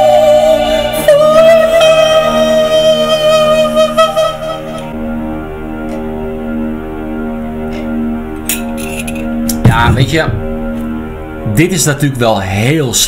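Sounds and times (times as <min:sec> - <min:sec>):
slow ballad backing track: 0:00.0 - 0:11.9.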